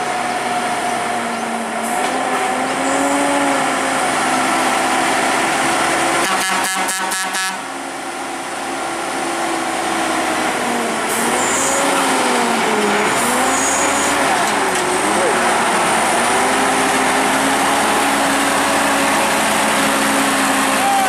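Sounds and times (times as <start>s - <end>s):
diesel truck engine labouring: 0.0s - 21.0s.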